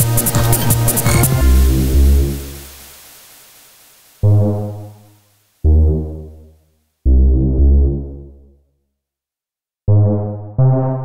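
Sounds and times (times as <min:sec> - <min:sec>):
deep electronic low notes: 0:05.6 - 0:06.5, 0:07.1 - 0:08.6, 0:09.9 - 0:11.0.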